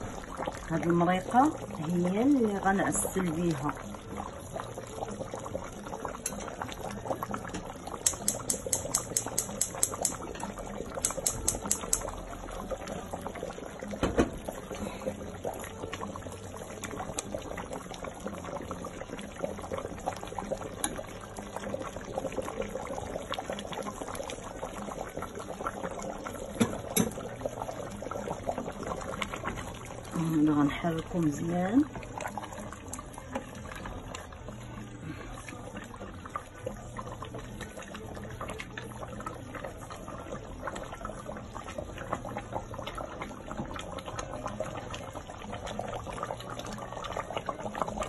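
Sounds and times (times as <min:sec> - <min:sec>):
stew bubbling in a pot: 0:00.0 - 0:48.0
sharp ticks: 0:08.0 - 0:10.2, 0:11.0 - 0:12.1.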